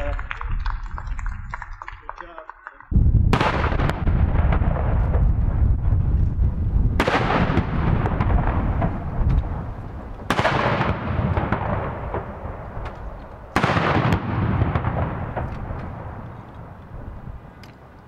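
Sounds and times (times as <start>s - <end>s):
rolling echo: 0.0s - 17.8s
field guns firing: 3.3s - 5.3s, 7.0s - 9.2s, 10.2s - 16.3s.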